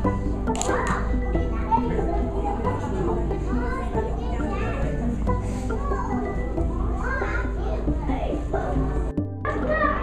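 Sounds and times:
music playing: 0.0 - 10.0.

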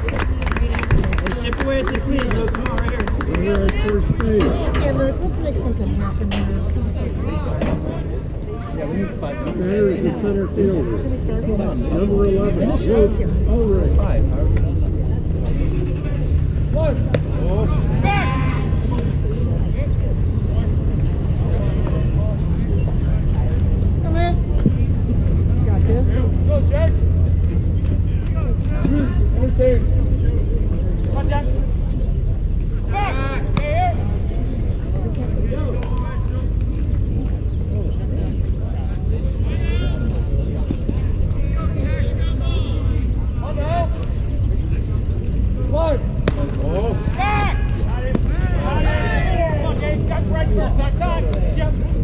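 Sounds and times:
voices calling out: 0.0 - 52.0
steady low rumble: 10.4 - 52.0.

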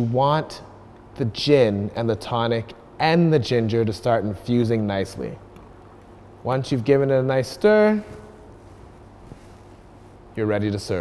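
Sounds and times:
faint steady hum and hiss: 0.0 - 11.0.

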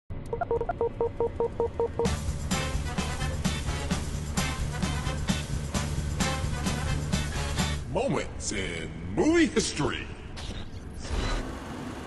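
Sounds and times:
low hum: 0.1 - 4.3
short electronic beeps: 0.3 - 2.1.

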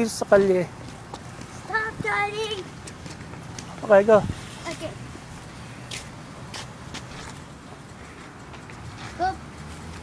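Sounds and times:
scuffing clicks: 5.9 - 7.5.

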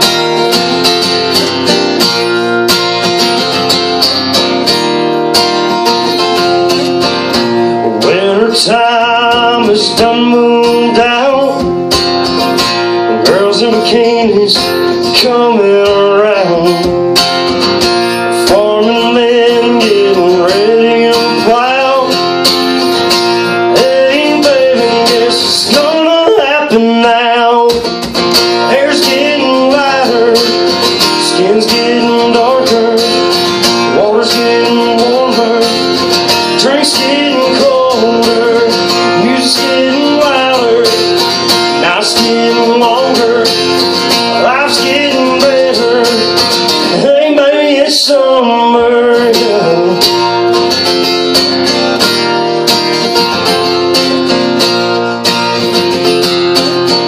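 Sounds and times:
acoustic guitar strumming: 0.0 - 57.0
man singing: 7.8 - 11.9, 13.0 - 17.2, 18.1 - 22.5, 23.4 - 50.4.

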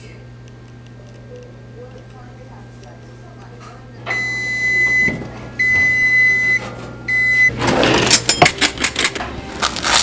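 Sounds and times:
toaster oven timer beeping: 2.7 - 7.6.

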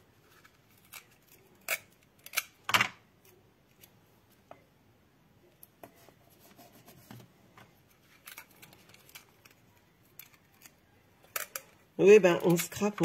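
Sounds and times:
sticky tape crackling: 7.8 - 13.0.

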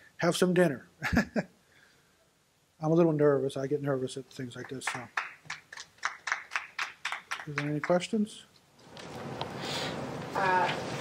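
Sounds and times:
people clapping lightly: 4.6 - 8.2.

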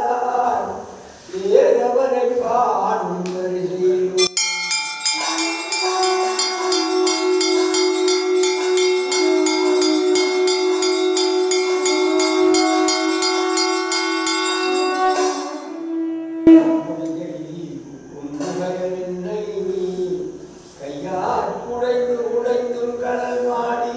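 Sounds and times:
hand bell ringing rapidly: 4.2 - 15.4
steady held tones: 4.2 - 17.3.

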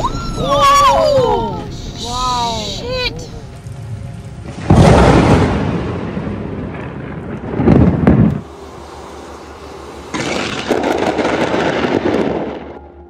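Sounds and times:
rushing storm noise: 0.0 - 13.0
thunder crack and rumble: 3.4 - 8.5, 10.1 - 12.8.

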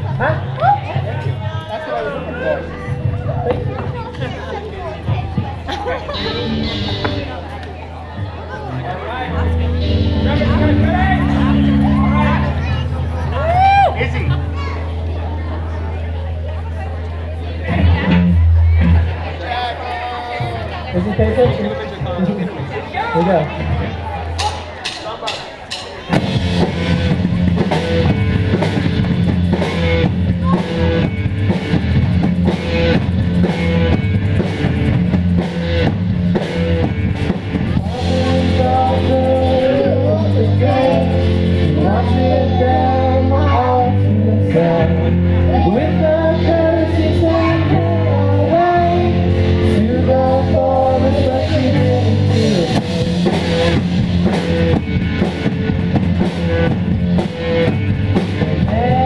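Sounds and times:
electric guitar: 0.0 - 20.8, 26.0 - 59.0
live rock band playing: 0.0 - 59.0
drum kit beat: 5.0 - 7.4, 9.8 - 14.4, 24.3 - 43.6, 48.6 - 59.0
person singing: 37.8 - 53.4, 58.5 - 59.0.

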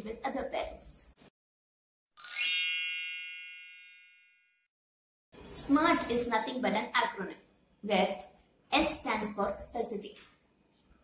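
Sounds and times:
bright chime ringing: 2.2 - 4.6.

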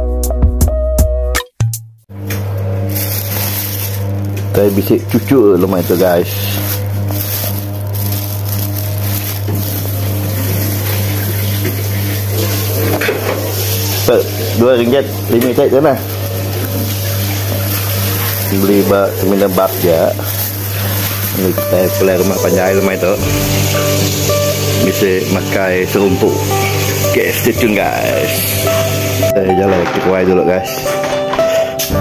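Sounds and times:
steady low hum: 2.1 - 29.4
plastic bag rustling: 2.2 - 29.3
constant hiss: 2.8 - 29.3.

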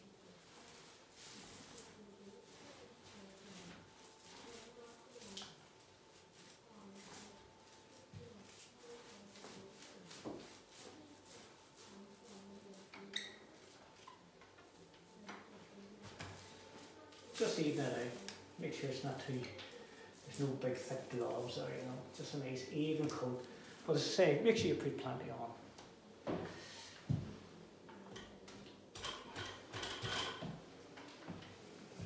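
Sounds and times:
paint roller rolling on wall: 0.0 - 24.2.

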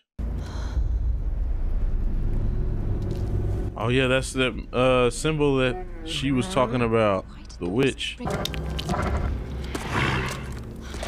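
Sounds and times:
low rumbling drone: 0.0 - 11.0
faint sustained low tones: 0.2 - 9.8.

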